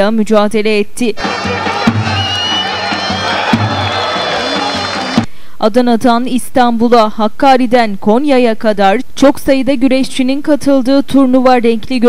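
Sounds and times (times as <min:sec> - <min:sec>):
crowd cheering: 0:01.2 - 0:05.3
music with held notes: 0:01.2 - 0:05.3.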